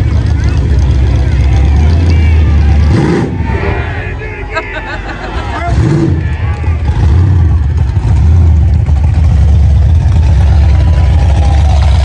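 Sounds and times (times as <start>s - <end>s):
crowd chatter: 0.0s - 12.0s
pickup engine low rumble: 0.0s - 12.0s.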